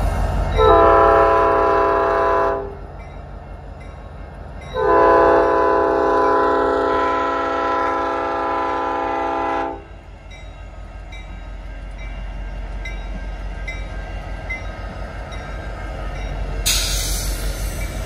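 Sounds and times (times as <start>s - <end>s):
low rumble of passing locomotives: 0.0s - 18.0s
locomotive air horn blasts: 0.6s - 2.8s, 4.8s - 9.9s.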